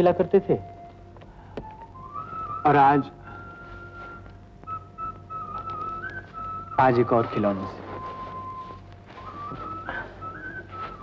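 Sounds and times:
person whistling a tune: 0:01.6 - 0:11.0.

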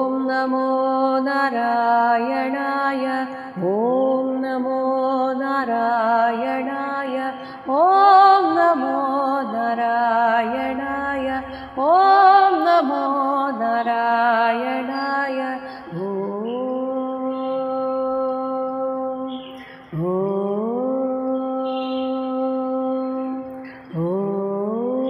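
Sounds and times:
person chanting a mantra: 0:00.0 - 0:25.0.

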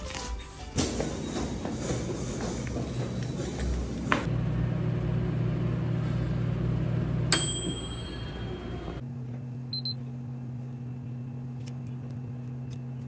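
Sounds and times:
room hum: 0:00.0 - 0:13.0
microwave oven humming: 0:03.2 - 0:13.0
microwave bell ding: 0:07.3 - 0:09.0.

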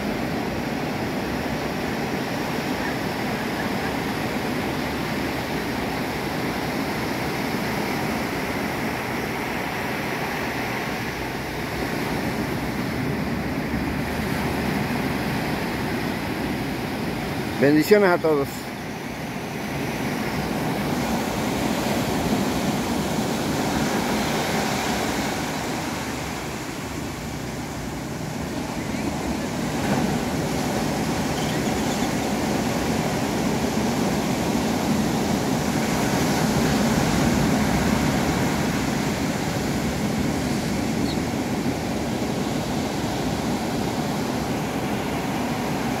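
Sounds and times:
ocean surf breaking: 0:00.0 - 0:46.0.

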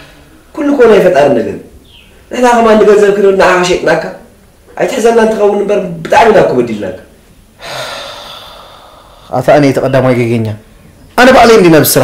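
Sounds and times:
man sighing: 0:07.6 - 0:09.2.

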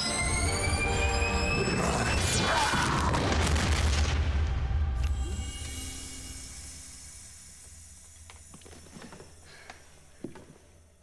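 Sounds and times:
low energy machine hum: 0:04.8 - 0:11.0.

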